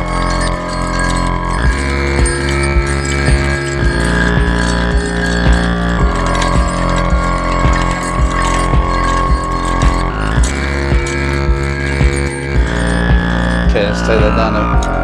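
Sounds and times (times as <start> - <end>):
steady electronic beat: 0.0 - 15.0
sustained synth chords: 0.0 - 15.0.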